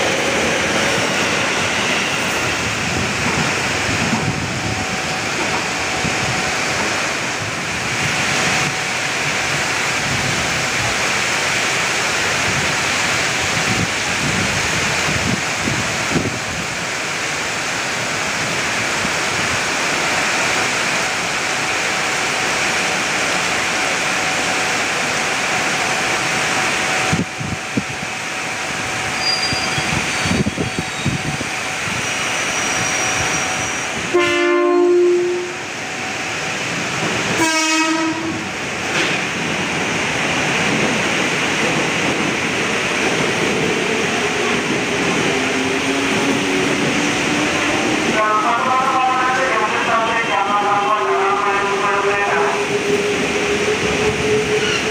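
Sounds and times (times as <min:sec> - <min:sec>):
heavy rain hiss: 0:00.0 - 0:54.2
train horn blasts: 0:34.1 - 0:35.6, 0:37.4 - 0:38.4.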